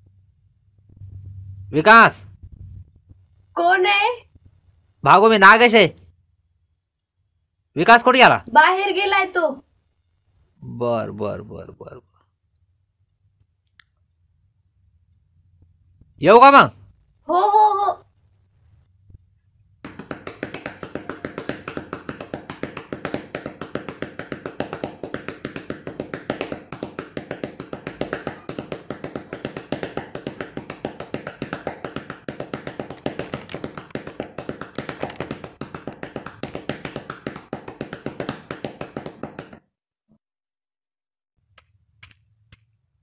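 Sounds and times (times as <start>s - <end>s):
fast sharp taps: 19.8s - 39.7s.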